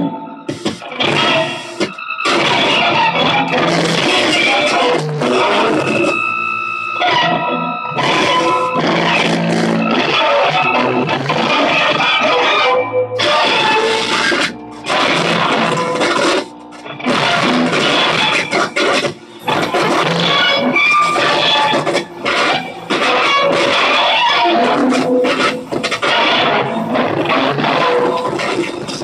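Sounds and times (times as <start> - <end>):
loud distorted noise music: 0.0 - 29.0
steady held tone with overtones: 0.0 - 29.0.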